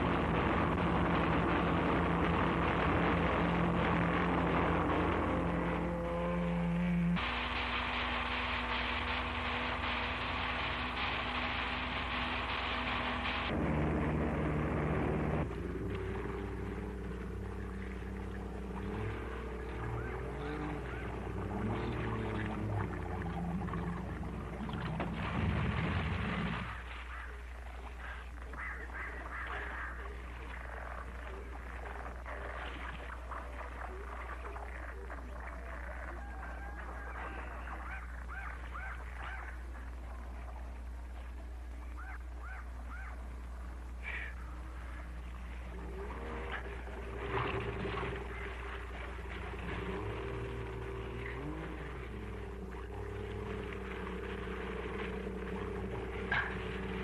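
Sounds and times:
motorboat engine running: 0:00.0 - 0:57.0
steady low hum: 0:00.0 - 0:57.0
frog calls: 0:27.1 - 0:40.0, 0:41.8 - 0:45.2.

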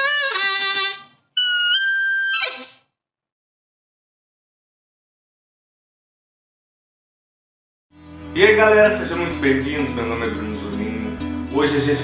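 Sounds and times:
harmonica jingle: 0:00.0 - 0:02.8.

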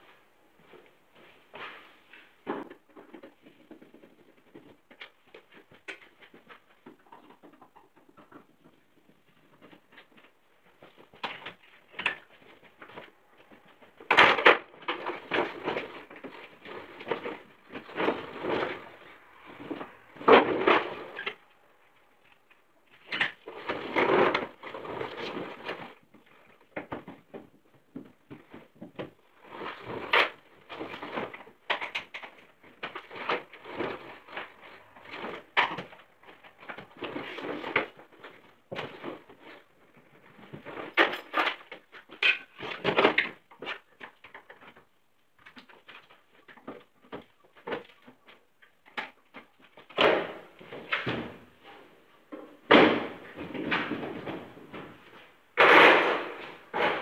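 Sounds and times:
rustling and clattering of tools: 0:00.0 - 0:57.0.

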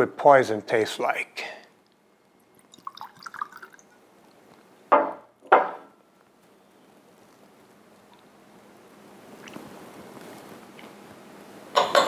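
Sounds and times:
liquid pouring into glass: 0:02.4 - 0:04.0.

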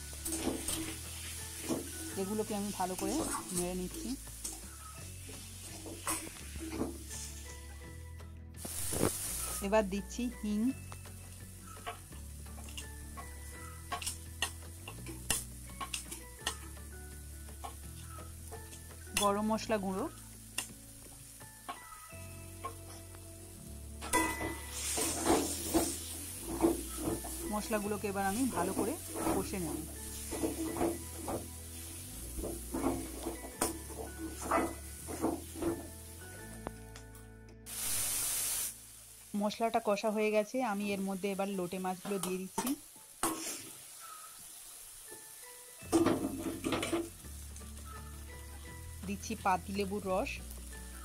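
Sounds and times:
sauce frying in oil: 0:00.0 - 0:07.8, 0:08.6 - 0:36.7, 0:37.7 - 0:51.0
soft background music: 0:00.0 - 0:51.0
metal spatula scraping pan: 0:24.1 - 0:31.5, 0:32.4 - 0:36.0.

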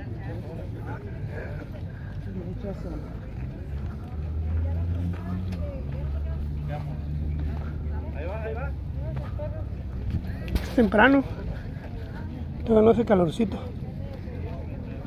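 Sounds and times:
faint voices: 0:00.0 - 0:15.0
low engine hum: 0:00.0 - 0:15.0.

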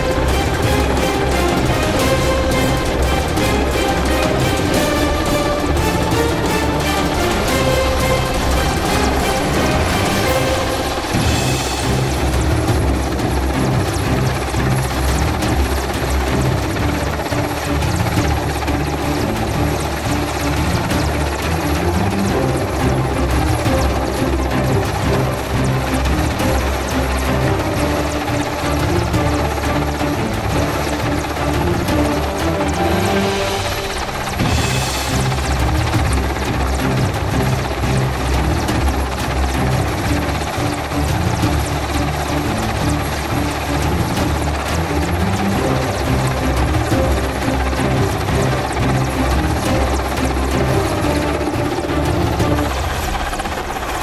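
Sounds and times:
helicopter hovering: 0:00.0 - 0:54.0
music: 0:00.0 - 0:54.0.

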